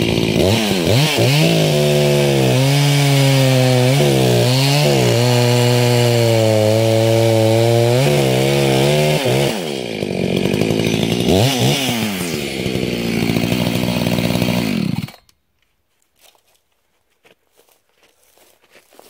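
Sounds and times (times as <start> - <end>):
chainsaw cutting wood: 0.0 - 15.4.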